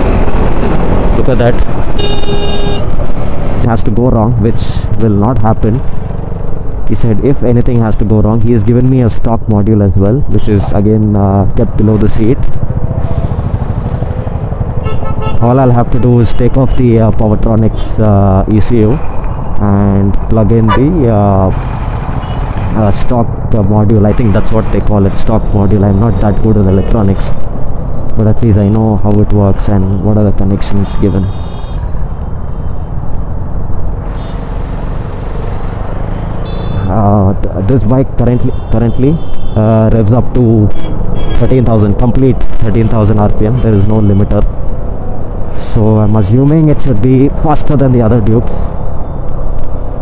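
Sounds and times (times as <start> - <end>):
wind rushing over microphone: 0.0 - 7.0
wind and road noise: 0.0 - 50.0
motorcycle engine running: 12.4 - 15.4.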